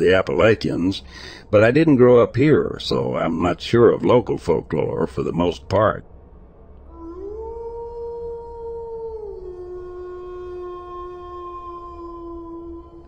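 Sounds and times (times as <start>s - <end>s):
dog howling: 6.9s - 13.0s.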